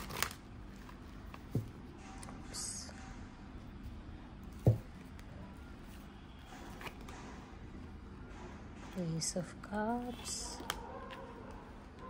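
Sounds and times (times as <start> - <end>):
cards shuffling and rustling: 0.0 - 1.7.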